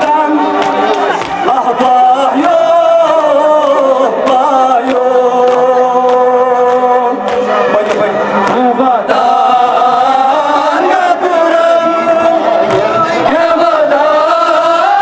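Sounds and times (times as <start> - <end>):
men chanting through microphones: 0.0 - 15.0.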